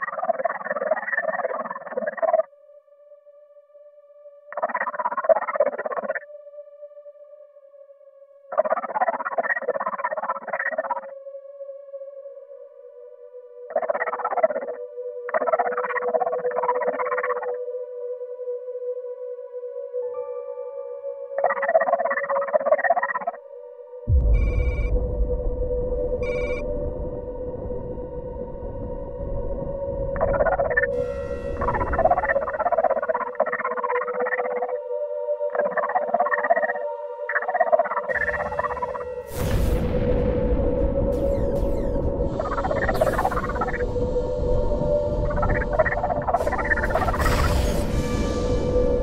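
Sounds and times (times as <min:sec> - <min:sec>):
deep rumble: 0:24.1 - 0:33.3, 0:38.1 - 0:49.0
synth drone: 0:24.1 - 0:49.0
warbling electronic sound: 0:41.2 - 0:43.9, 0:45.3 - 0:47.9.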